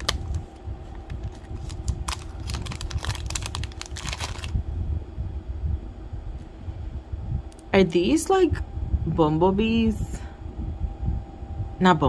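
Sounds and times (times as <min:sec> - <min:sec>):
plastic bag crinkling: 0:00.0 - 0:04.6.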